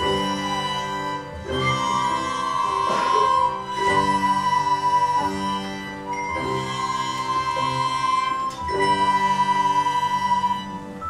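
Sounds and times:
flute ensemble playing: 0.0 - 11.0.

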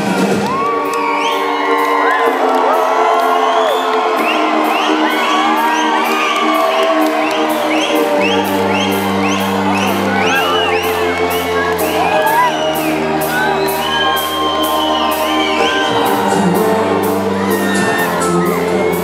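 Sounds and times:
live rock band: 0.0 - 19.0
crowd whooping and cheering: 0.1 - 19.0.

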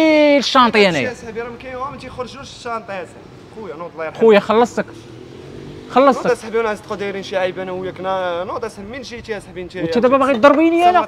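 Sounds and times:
man's voice: 0.0 - 5.0, 5.9 - 11.0.

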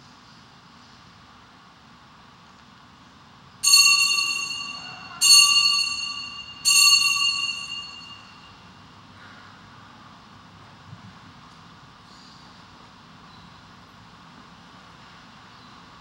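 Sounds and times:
altar bell ringing: 3.6 - 8.6.

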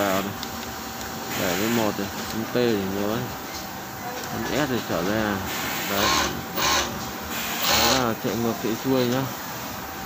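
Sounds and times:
sewing machine motor whirring: 5.5 - 8.1.

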